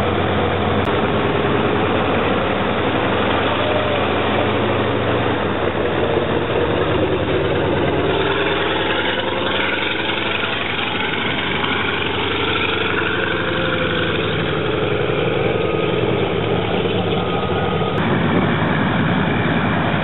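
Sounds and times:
radial aircraft engine idling: 0.0s - 20.0s.

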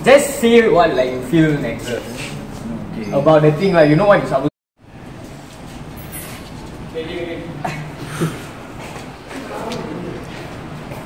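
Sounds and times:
outdoor ambience hiss and rumble: 0.0s - 11.0s.

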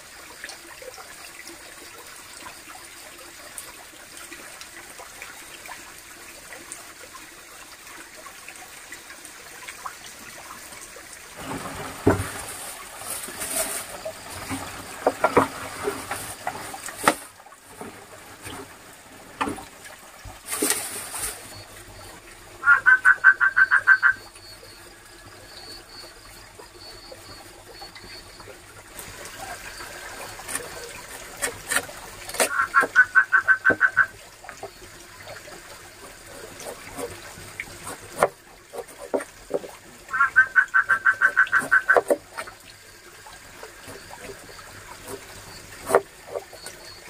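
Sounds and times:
knocks and rustles: 11.4s - 18.7s
rapid pulsed animal call: 22.6s - 28.3s, 32.5s - 34.8s, 40.1s - 42.5s.

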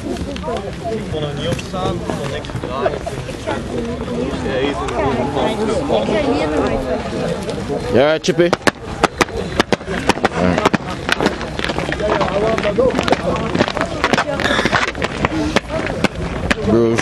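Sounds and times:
young voices talking: 0.0s - 17.0s
sharp clicks and slaps: 8.4s - 17.0s.

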